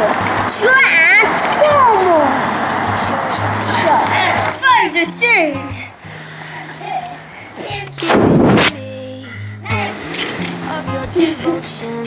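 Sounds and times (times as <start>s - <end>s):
steady rushing noise: 0.0s - 8.9s
child calling out: 0.5s - 2.5s, 3.6s - 5.7s
background pop music: 7.6s - 12.0s.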